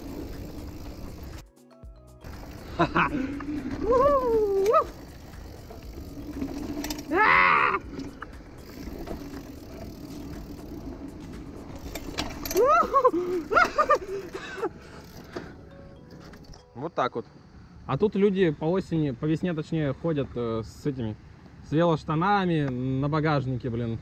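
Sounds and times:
mountain bike tyre noise: 0.0s - 1.4s, 2.2s - 16.6s.

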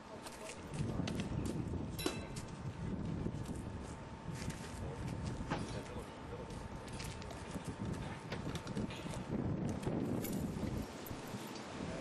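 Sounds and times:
wind buffeting microphone: 0.6s - 12.0s
sharp ringing clink: 2.0s - 2.4s.

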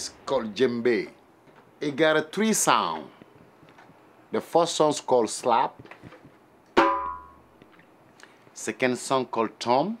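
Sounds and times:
djembe slap stroke: 6.8s - 7.4s.

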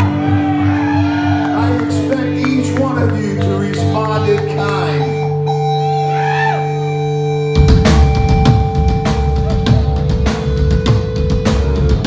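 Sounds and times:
punk rock band playing: 0.0s - 12.0s.

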